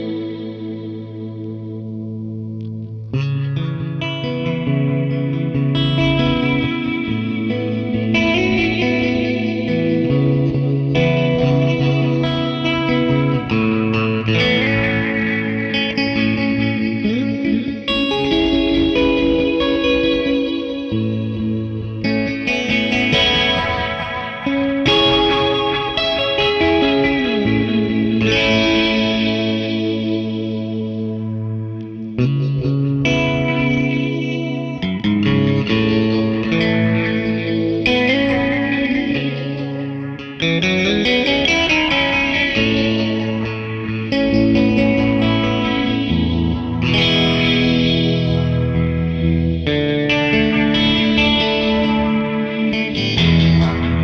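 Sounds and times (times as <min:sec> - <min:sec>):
electric guitar with phaser and delay: 0:00.0 - 0:54.0.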